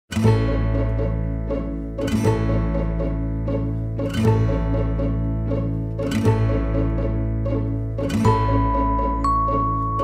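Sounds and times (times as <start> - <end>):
plucked string instrument: 0.1 - 10.0.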